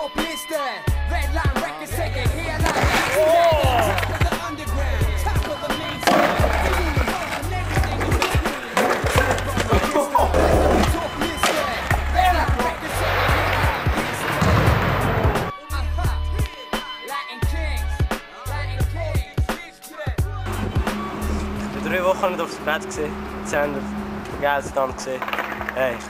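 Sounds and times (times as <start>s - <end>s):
hip-hop beat: 0.0s - 23.2s
skateboard impacts: 2.5s - 4.6s, 5.2s - 15.5s, 25.1s - 26.0s
skateboards clattering on pavement: 2.6s - 15.5s, 24.8s - 26.0s.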